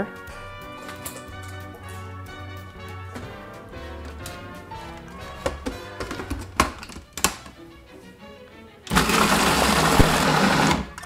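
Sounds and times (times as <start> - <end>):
background music: 0.0 - 11.0
plastic lid clicking shut: 5.4 - 7.5
food processor motor running: 8.9 - 10.9.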